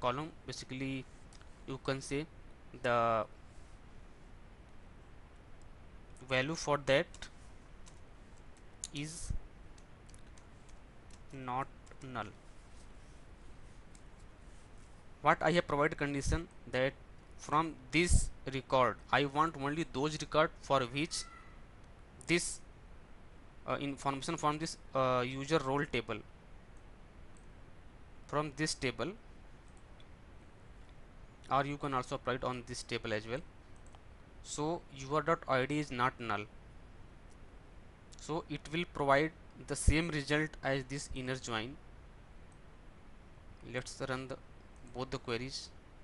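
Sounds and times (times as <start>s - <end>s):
man speaking: 0.0s - 1.1s, 1.7s - 3.3s, 6.2s - 7.3s, 8.8s - 9.4s, 11.3s - 12.4s, 15.2s - 21.3s, 22.3s - 22.6s, 23.7s - 26.2s, 28.3s - 29.2s, 31.5s - 33.4s, 34.5s - 36.5s, 38.2s - 41.8s, 43.6s - 45.7s
microphone hum and hiss: 0.0s - 46.0s
computer mouse click: 7.8s - 8.0s
keyboard typing: 7.8s - 8.0s.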